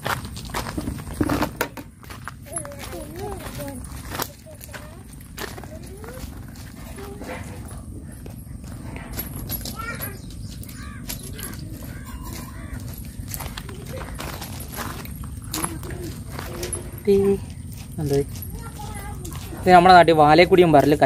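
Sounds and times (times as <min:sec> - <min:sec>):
faint voices: 0:02.4 - 0:20.1.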